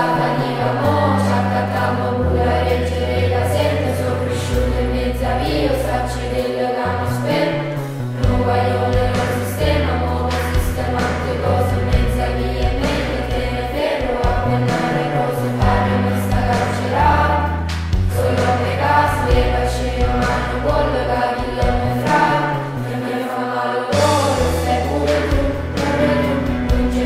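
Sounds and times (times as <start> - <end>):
held bass notes: 0.0 - 27.0
voices singing a song: 0.0 - 27.0.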